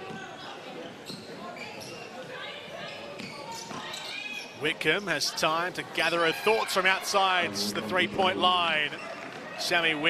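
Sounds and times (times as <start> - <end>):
crowd voices: 6.4 - 10.0
faint players calling: 7.3 - 9.2.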